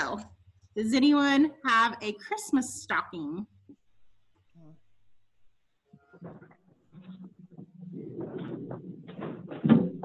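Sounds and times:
faint broken voice over call: 5.9s - 8.9s.

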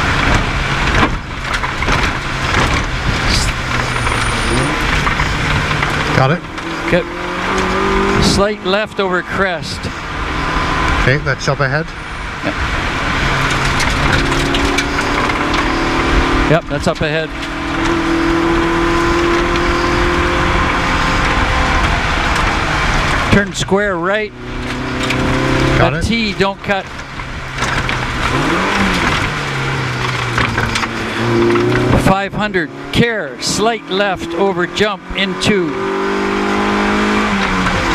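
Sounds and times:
car engine running hard: 0.0s - 37.9s
tyre noise on wet road: 0.0s - 37.9s.

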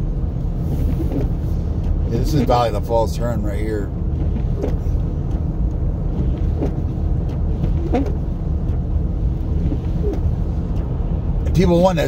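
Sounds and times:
car road rumble and tyre noise: 0.0s - 12.0s.

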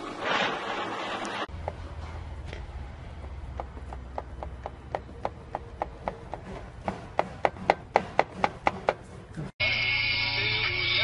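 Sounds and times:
regular mechanical knocking: 1.5s - 9.5s.

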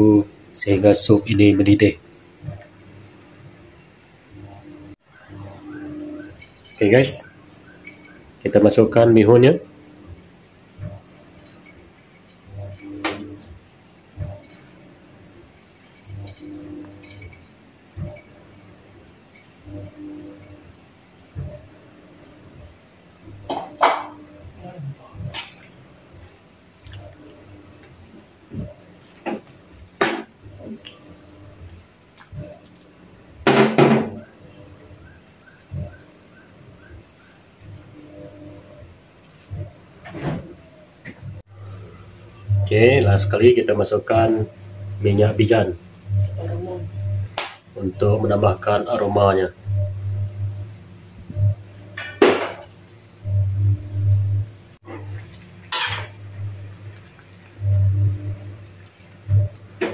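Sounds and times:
insect trilling: 0.0s - 59.9s
fork knocking and scraping wok: 23.5s - 24.2s, 54.9s - 56.4s.

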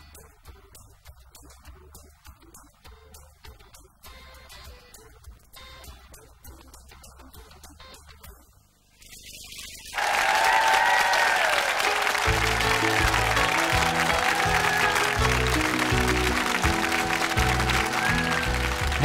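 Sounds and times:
audience applause: 10.0s - 19.0s
country band playing: 11.8s - 19.0s.

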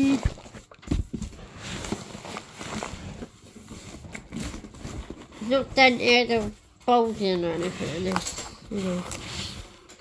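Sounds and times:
cardboard packaging rustling: 0.0s - 10.0s.

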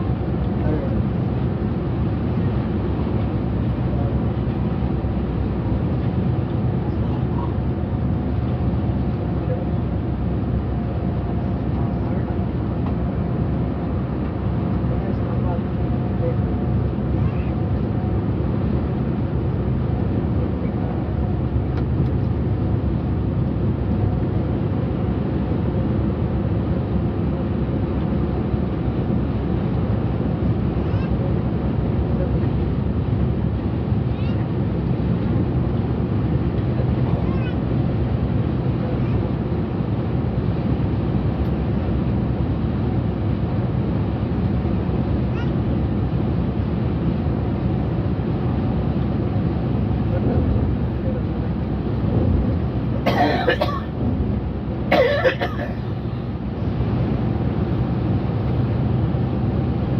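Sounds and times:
coach engine drone: 0.0s - 59.9s
road noise: 0.0s - 59.9s.

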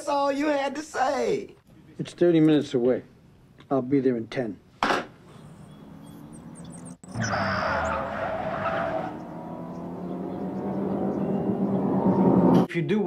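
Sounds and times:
sports car engine at speed: 5.3s - 12.7s
sports car tyre squeal: 5.4s - 9.6s.

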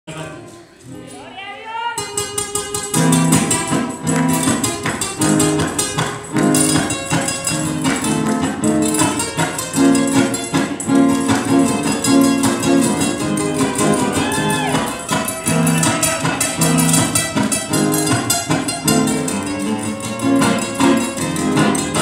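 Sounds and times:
acoustic guitars strumming: 0.1s - 22.0s.

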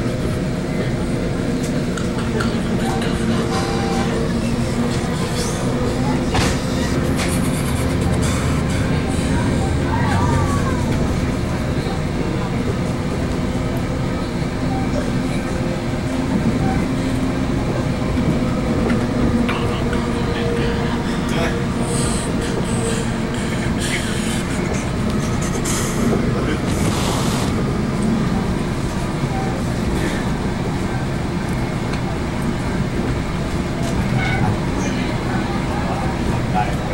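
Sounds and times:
train running rumble: 0.0s - 36.9s.

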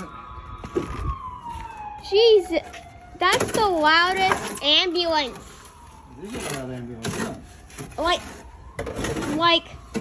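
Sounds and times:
ambulance siren wailing: 0.0s - 10.0s.

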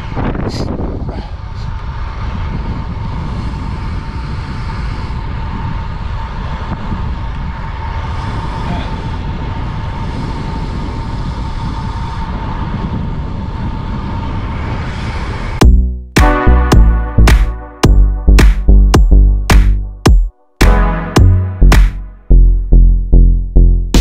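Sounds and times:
bicycle tyre noise: 0.0s - 15.6s
wind on microphone: 0.0s - 15.6s.

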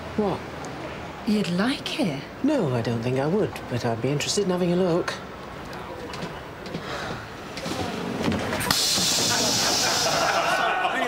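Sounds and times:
loud steady hiss: 8.6s - 10.8s.

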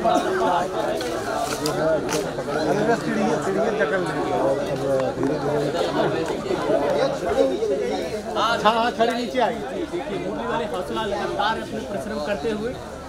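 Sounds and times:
overlapping voices: 0.0s - 8.7s.

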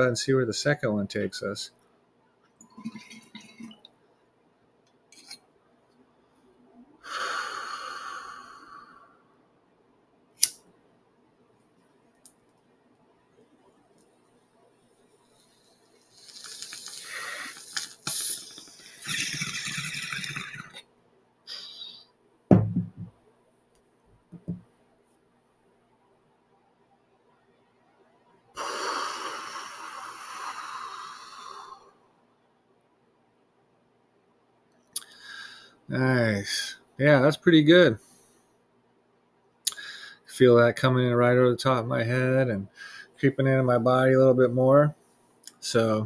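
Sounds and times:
lighter clicking: 10.4s - 10.6s
water bubbling through bong: 18.3s - 20.8s
low thump: 22.5s - 23.2s.

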